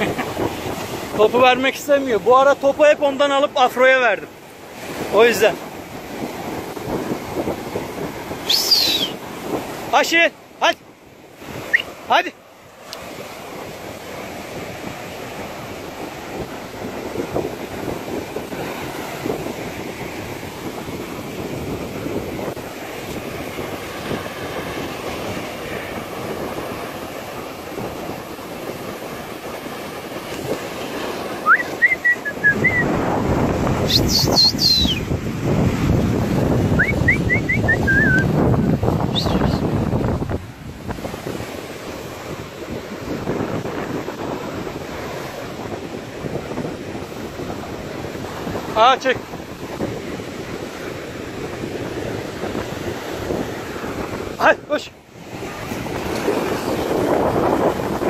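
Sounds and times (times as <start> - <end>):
wind noise on microphone: 0.0 - 12.1, 12.8 - 58.0
sea surf washing onto beach: 0.0 - 58.0.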